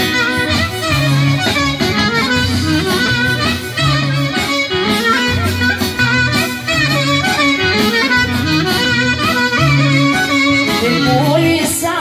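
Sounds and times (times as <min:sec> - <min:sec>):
folk band playing through pa: 0:00.0 - 0:12.0.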